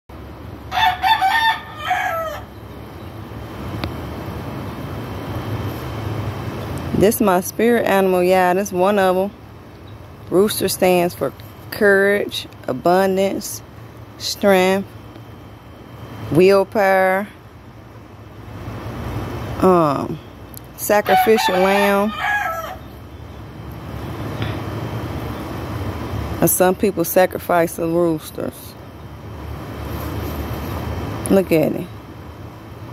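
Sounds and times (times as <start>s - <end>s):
rooster crowing: 0.7s - 2.6s, 21.0s - 23.0s.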